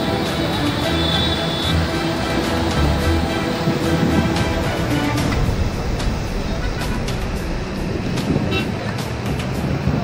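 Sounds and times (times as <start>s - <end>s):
background music: 0.0s - 10.0s
cars passing on wet road: 0.0s - 10.0s.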